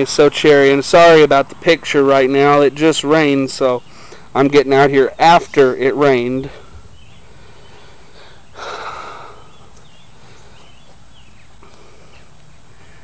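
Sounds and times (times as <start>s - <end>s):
breath close to microphone: 3.9s - 4.3s, 6.5s - 10.7s.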